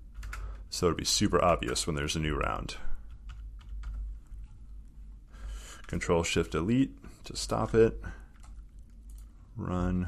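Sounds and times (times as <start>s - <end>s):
faint low hum: 0.0s - 10.0s
keyboard typing: 0.1s - 0.6s, 3.0s - 4.7s, 8.2s - 9.4s.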